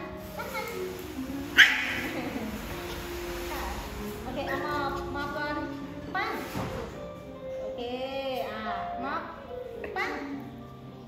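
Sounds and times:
faint background music: 0:00.0 - 0:11.0
small dog yipping: 0:01.5 - 0:02.2.

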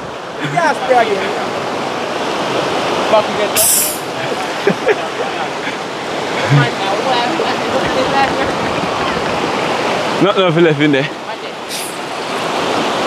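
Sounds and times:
river rushing over stones: 0:00.0 - 0:13.0
short high hiss: 0:03.6 - 0:04.1, 0:11.7 - 0:12.0.

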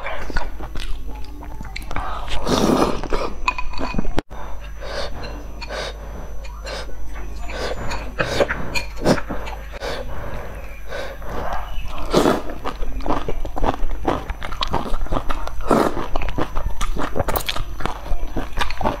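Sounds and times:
wet chewing and smacking: 0:00.1 - 0:02.1, 0:11.4 - 0:19.0
noodle slurping: 0:07.5 - 0:19.0.

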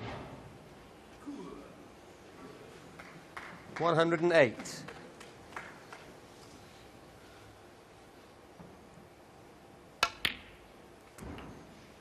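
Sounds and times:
snooker balls clicking: 0:10.0 - 0:11.5.

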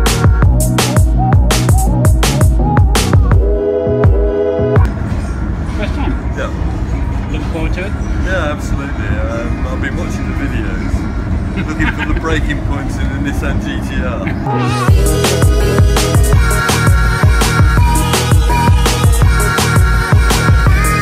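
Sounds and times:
electronic music: 0:00.0 - 0:04.9, 0:14.3 - 0:21.0
rail carriage rumble and rattle: 0:04.9 - 0:14.5.

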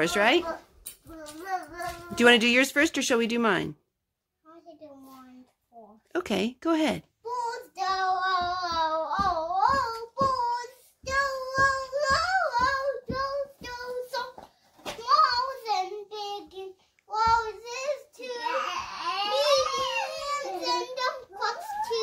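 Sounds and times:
boy singing unaccompanied: 0:07.2 - 0:22.0.

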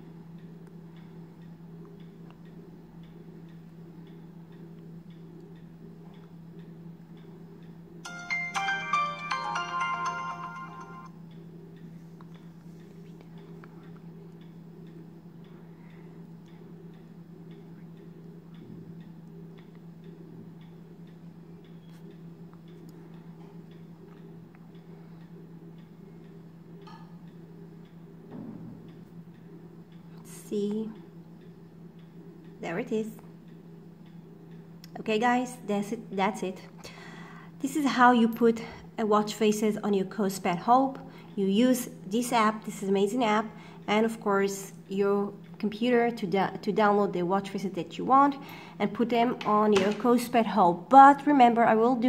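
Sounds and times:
steady low hum: 0:00.0 - 0:52.0
faint regular ticking: 0:00.1 - 0:08.4, 0:09.6 - 0:28.3, 0:28.9 - 0:36.1
electronic startup jingle: 0:08.0 - 0:11.2.

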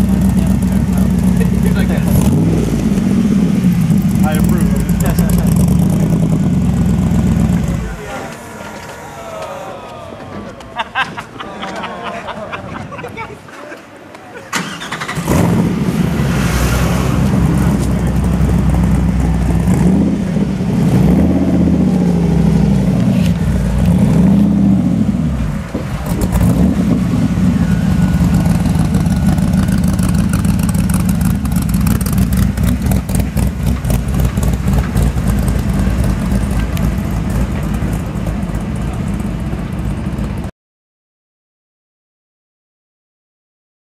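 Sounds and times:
car engine starting and revving: 0:00.0 - 0:09.1, 0:14.5 - 0:40.4.

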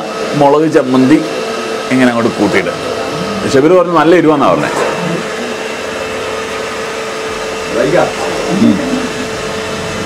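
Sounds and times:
electric motor whirring: 0:00.0 - 0:10.0
constant hum: 0:02.2 - 0:10.0.

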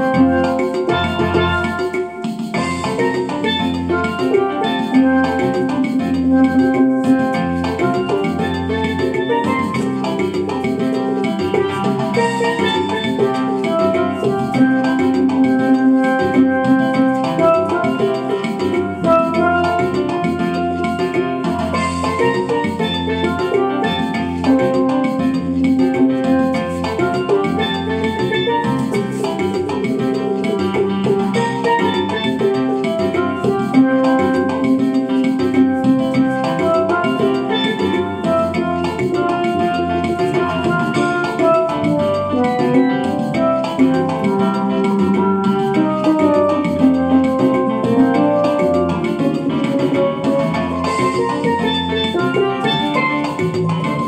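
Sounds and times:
steel drum melody: 0:00.0 - 0:54.0.

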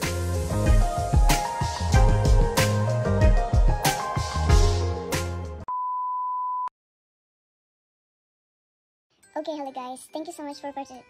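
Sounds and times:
intro music with a beat: 0:00.0 - 0:05.6.

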